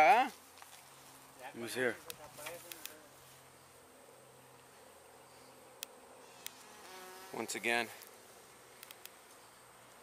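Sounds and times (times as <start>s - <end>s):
honey bees buzzing: 3.0s - 10.0s.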